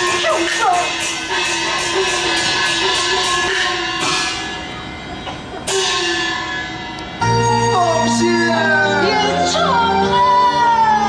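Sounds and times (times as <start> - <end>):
percussion strokes: 0.0 - 10.2
traditional orchestra held tones: 0.0 - 11.0.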